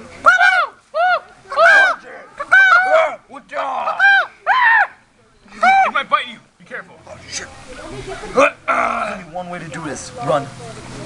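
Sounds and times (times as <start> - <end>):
young voices hooting: 0.2 - 6.2.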